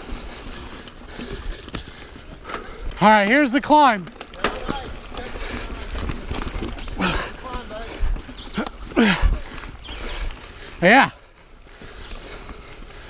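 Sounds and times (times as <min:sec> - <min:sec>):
bike clicks and rattles: 0:00.0 - 0:13.0
bike tyres on loose ground: 0:00.0 - 0:13.0
rider exertion sounds: 0:00.0 - 0:13.0.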